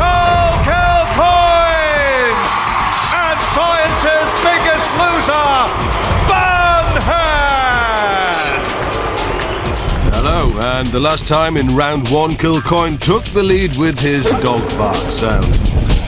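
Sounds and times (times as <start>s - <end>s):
people whooping and shouting: 0.0s - 10.6s
background music: 0.0s - 16.0s.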